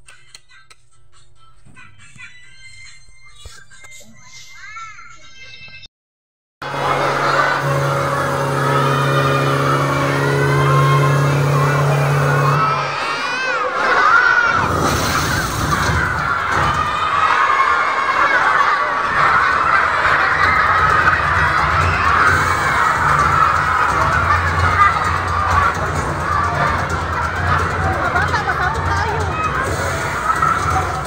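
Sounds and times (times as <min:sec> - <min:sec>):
low hum: 0:06.6 - 0:13.1
children shouting and cheering: 0:06.6 - 0:31.0.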